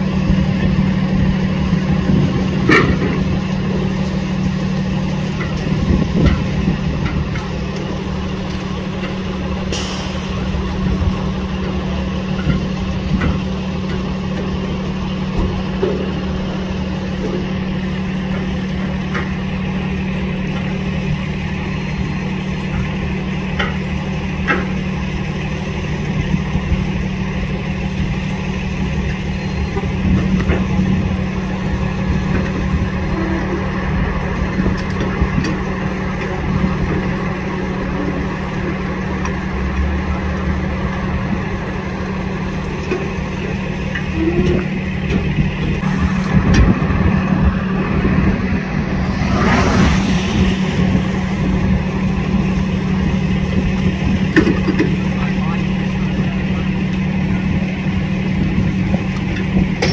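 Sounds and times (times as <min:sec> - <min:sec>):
truck engine idling: 0:00.0 - 0:59.9.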